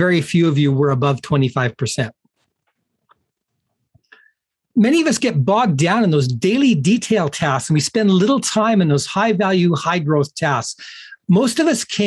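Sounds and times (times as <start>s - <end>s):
man speaking: 0.0s - 2.2s, 4.7s - 12.0s.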